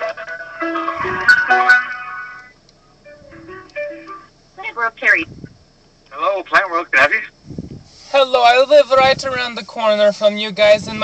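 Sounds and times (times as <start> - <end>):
tinny phone hold music: 0.0 - 4.3.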